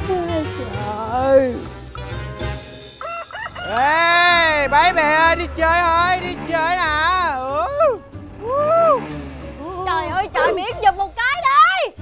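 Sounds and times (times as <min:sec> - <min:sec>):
rooster crowing: 0:03.0 - 0:05.6.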